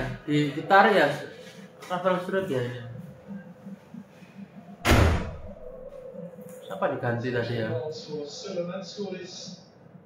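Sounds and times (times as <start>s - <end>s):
faint tv background sound: 0.0s - 4.8s, 5.5s - 10.0s
loud thump: 4.8s - 5.5s.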